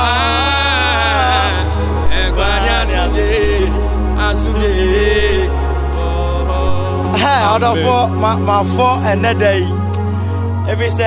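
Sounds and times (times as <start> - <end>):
man singing long note: 0.0 - 9.3
instrumental worship music: 0.0 - 11.0.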